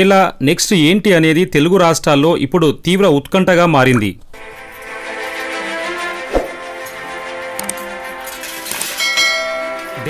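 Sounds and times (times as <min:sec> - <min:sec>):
background music tone: 0:04.4 - 0:10.0
bright bell-like chime: 0:08.8 - 0:10.0.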